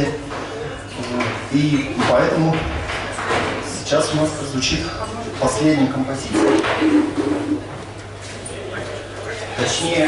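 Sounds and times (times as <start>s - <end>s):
man's voice over loudspeaker: 0.0s - 0.3s, 1.2s - 2.9s, 3.8s - 6.8s, 9.5s - 10.0s.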